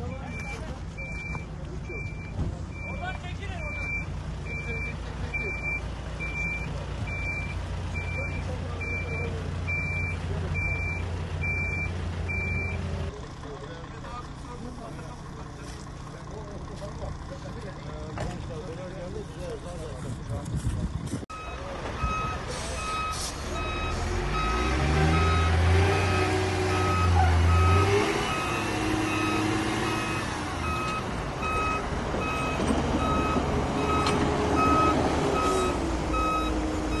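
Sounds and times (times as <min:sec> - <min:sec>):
diesel engine running: 0:00.0 - 0:37.0
voices: 0:00.0 - 0:37.0
reversing alarm beeps: 0:00.2 - 0:12.8, 0:21.3 - 0:37.0.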